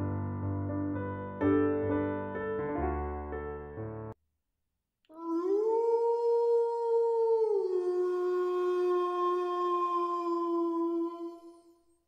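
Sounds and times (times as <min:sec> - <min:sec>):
wolf howling: 0:05.1 - 0:11.7.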